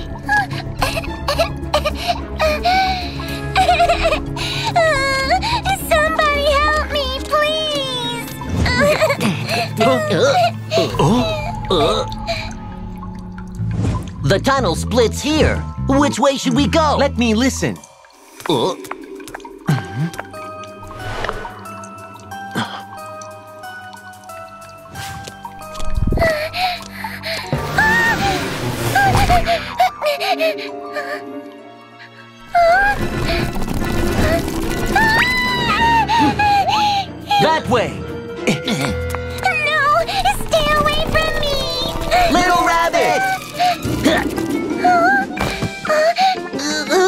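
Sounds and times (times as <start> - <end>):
cartoon water dripping and trickling: 0.0 - 28.0, 32.6 - 36.9, 39.1 - 45.1
background music with held notes: 0.0 - 47.0.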